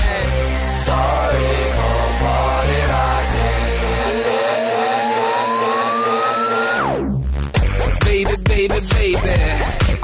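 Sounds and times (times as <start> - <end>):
dance music: 0.0 - 10.0
rising sweep: 0.9 - 7.4.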